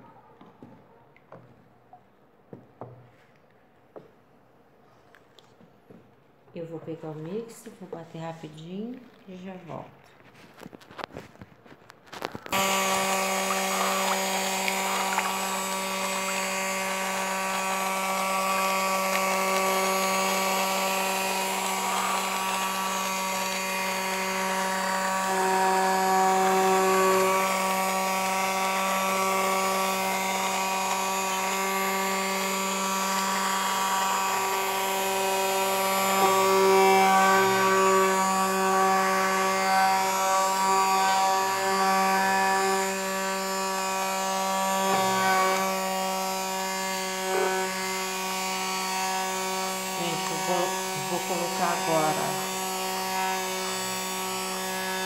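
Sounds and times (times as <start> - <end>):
electric stick blender whining: 12.0 - 55.0.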